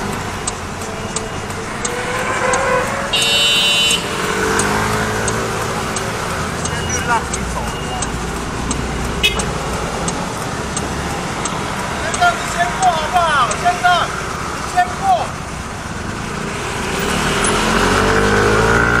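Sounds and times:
faint ticking: 0:00.0 - 0:15.9
motorcycle engine idling and revving: 0:00.0 - 0:19.0
street traffic: 0:00.0 - 0:19.0.

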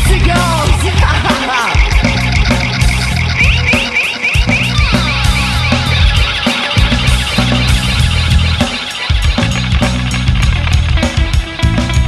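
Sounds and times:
drums and cymbals: 0:00.0 - 0:12.0
live rock band playing: 0:00.0 - 0:12.0.

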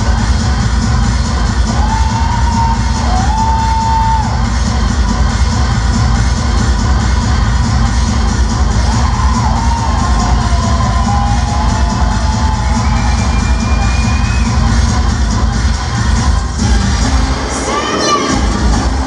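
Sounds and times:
crowd shouting and cheering: 0:00.0 - 0:19.0
loud dance music: 0:00.0 - 0:19.0.

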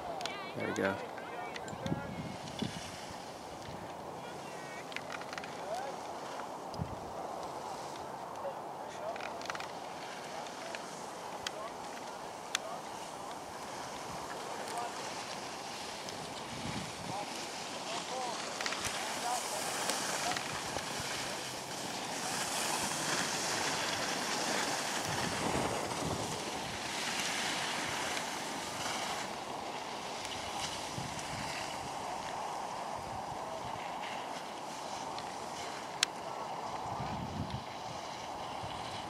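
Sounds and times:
skis scraping over snow: 0:00.0 - 0:39.0
wind rushing over microphone: 0:01.6 - 0:04.5, 0:05.9 - 0:08.8, 0:13.1 - 0:17.7, 0:18.8 - 0:34.0, 0:36.3 - 0:39.0.

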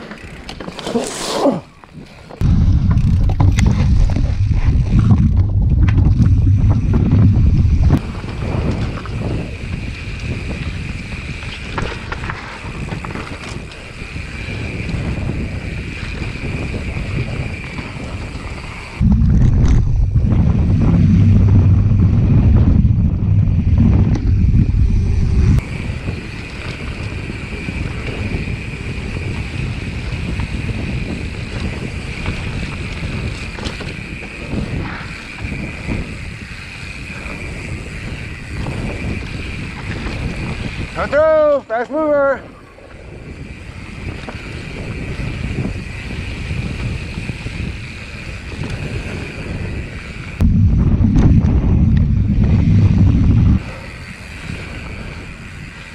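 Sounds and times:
bike rattles: 0:00.0 - 0:55.9
bike tyre noise: 0:00.0 - 0:55.9
deep rumble: 0:02.4 - 0:09.6, 0:16.9 - 0:26.2, 0:48.5 - 0:53.8
wind rushing over microphone: 0:02.4 - 0:55.9.

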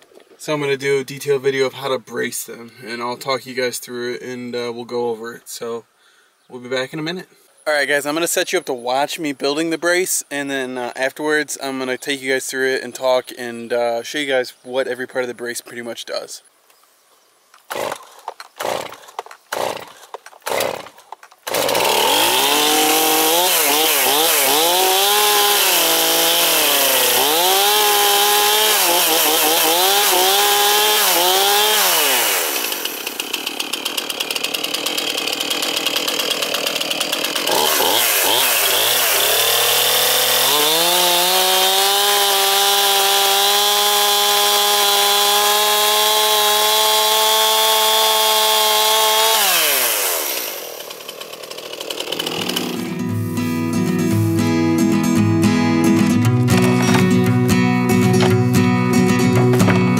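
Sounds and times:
chainsaw engine revving: 0:17.7 - 0:53.7, 0:56.4 - 0:59.9
starter cord pulls: 0:52.2 - 0:53.0, 0:56.2 - 0:57.4, 0:58.0 - 0:59.9.

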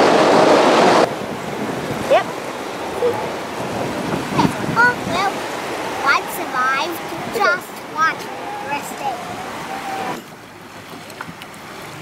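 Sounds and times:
water noise around boat: 0:00.0 - 0:12.0
wind: 0:00.0 - 0:12.0.

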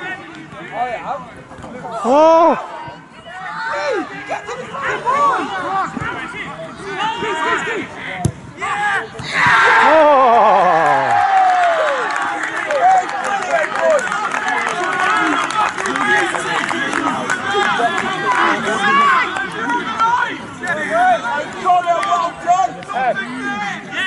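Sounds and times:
players shouting and chattering: 0:00.0 - 0:24.0.

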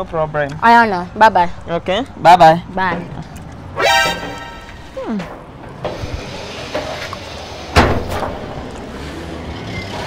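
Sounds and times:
passing traffic: 0:00.0 - 0:10.0
sharp bang: 0:07.7 - 0:08.6.

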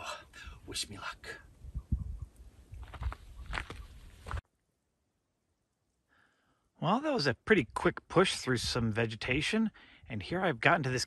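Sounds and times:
footsteps crunching on gravel: 0:02.8 - 0:04.4.

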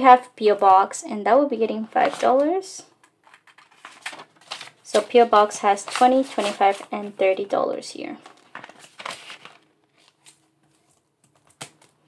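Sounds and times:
paper and plastic rustling: 0:02.0 - 0:02.6, 0:03.2 - 0:07.5, 0:08.2 - 0:12.0.

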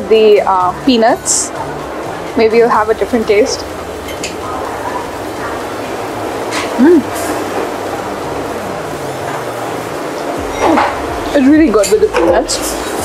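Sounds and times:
stall background noise: 0:00.0 - 0:13.0
woman humming mm: 0:06.6 - 0:07.2.

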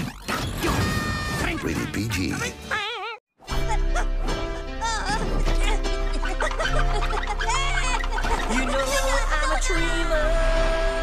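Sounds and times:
background music: 0:01.1 - 0:11.0
squeaky cartoon voice: 0:06.4 - 0:09.7.

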